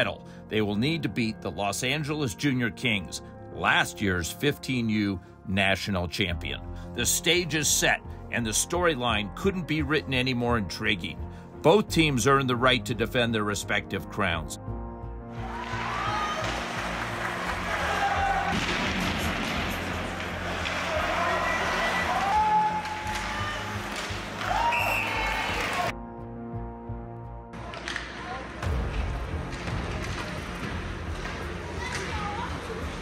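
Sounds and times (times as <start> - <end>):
ice hockey game sounds: 15.3 - 26.0, 27.5 - 33.0.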